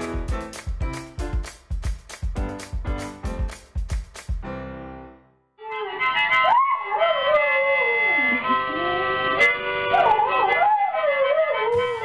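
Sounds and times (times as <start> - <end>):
music: 0.0 - 12.0
dog howling: 6.3 - 8.4, 9.9 - 12.0.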